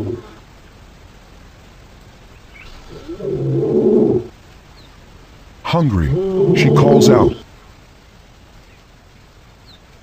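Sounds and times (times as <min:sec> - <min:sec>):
lioness low call: 0:00.0 - 0:00.4, 0:06.0 - 0:07.4.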